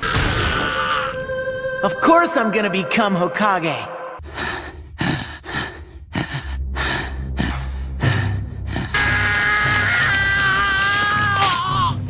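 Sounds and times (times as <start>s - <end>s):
steady low drone: 0.4s - 9.8s.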